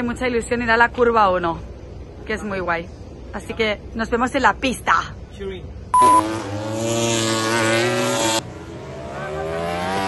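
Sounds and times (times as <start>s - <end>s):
short beep: 6.0s - 6.3s
racing motorcycle engines accelerating: 6.0s - 10.0s.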